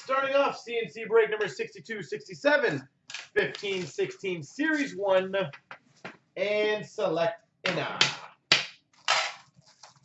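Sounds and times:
plastic wrap snapping and crackling: 8.6 - 10.0.

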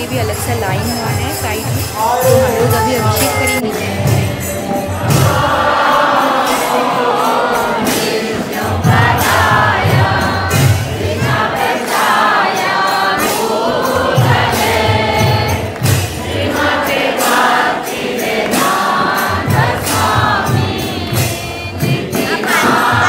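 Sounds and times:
drum beat: 0.0 - 23.0
jingling hand cymbals: 0.0 - 23.0
group singing a chant: 2.0 - 23.0.

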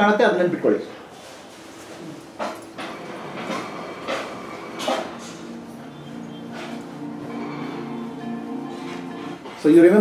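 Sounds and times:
faint sustained musical tone: 5.2 - 10.0.

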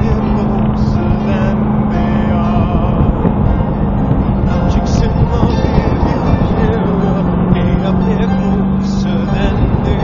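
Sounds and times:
car engine cruising: 0.0 - 10.0
road and tyre rumble: 0.0 - 10.0
song playing: 0.0 - 10.0.

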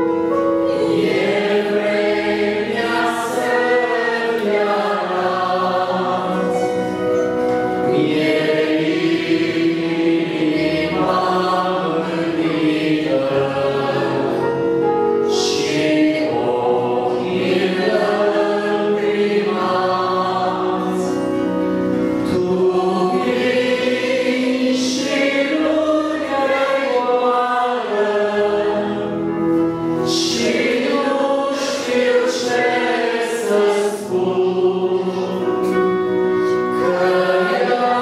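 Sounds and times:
congregation singing a hymn: 0.0 - 38.0
piano accordion: 0.0 - 38.0.

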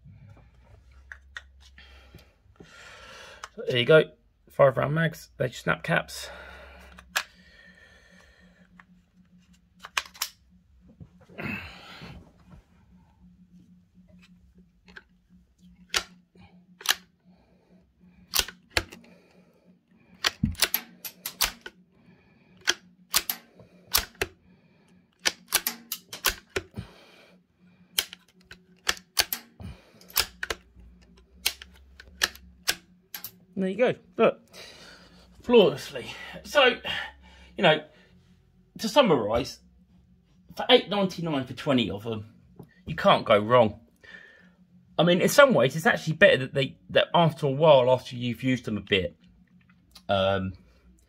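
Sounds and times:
faint steady hum: 0.0 - 51.0
rifle bolt clicking and clacking: 9.8 - 10.4, 16.8 - 17.1, 18.3 - 19.0, 20.2 - 21.8, 22.6 - 24.3, 25.2 - 26.7, 28.0 - 33.4.

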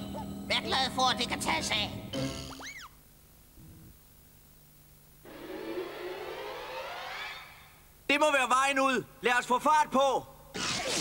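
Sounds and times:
rising multi-tone sweep: 5.3 - 7.7.

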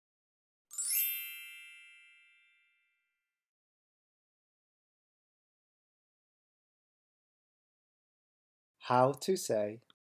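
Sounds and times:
bright bell-like chime: 0.7 - 3.2.

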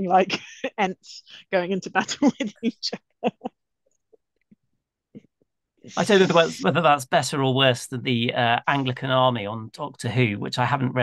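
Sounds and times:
faint woman's laughter: 6.0 - 6.8
man's voice: 6.0 - 11.0.

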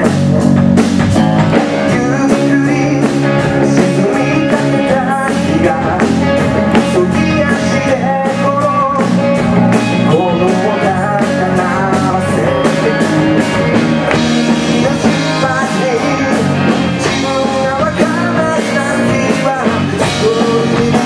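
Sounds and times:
bass guitar: 0.0 - 21.0
distorted electric guitars: 0.0 - 21.0
drum kit and cymbals: 0.0 - 21.0
man singing through pa: 1.8 - 9.2, 10.0 - 13.2, 14.6 - 21.0.

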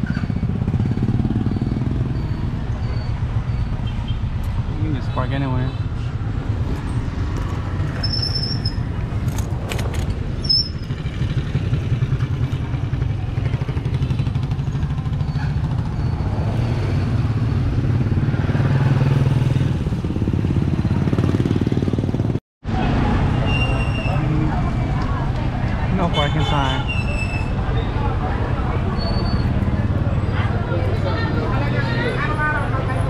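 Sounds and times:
short high squeaks: 7.9 - 8.9, 10.4 - 11.0, 14.7 - 17.3, 23.4 - 24.2, 26.6 - 28.0, 28.9 - 29.6.

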